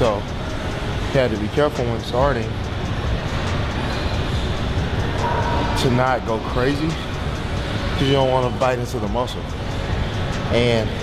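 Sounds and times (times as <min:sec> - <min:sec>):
background music: 0:00.0 - 0:11.0
stepmill mechanical rumble: 0:00.0 - 0:11.0.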